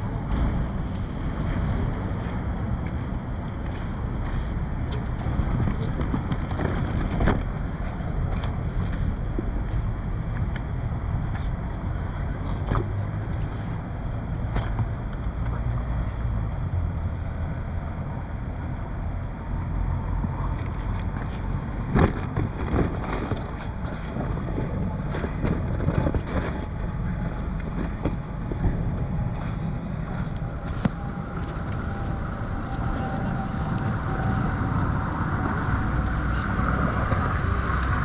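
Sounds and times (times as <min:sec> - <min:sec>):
steady low rumble: 0:00.0 - 0:38.0
wind buffeting microphone: 0:00.0 - 0:38.0.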